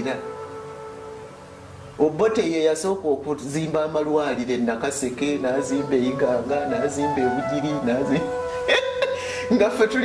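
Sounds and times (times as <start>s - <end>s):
background music: 0.0s - 10.0s
steady held note: 5.2s - 10.0s.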